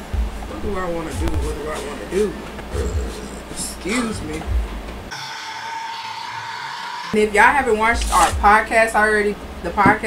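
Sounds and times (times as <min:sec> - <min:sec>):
steady electronic tone: 0:01.2 - 0:07.8.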